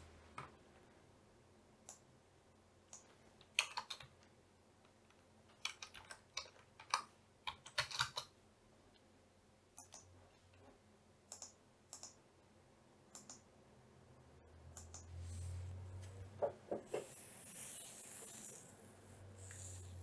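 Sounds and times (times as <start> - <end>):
low hum and hiss: 0.0 - 7.6
keyboard and mouse clicks: 2.9 - 4.2, 5.0 - 8.3, 9.8 - 10.1, 11.3 - 12.2, 13.1 - 13.5, 14.7 - 15.1.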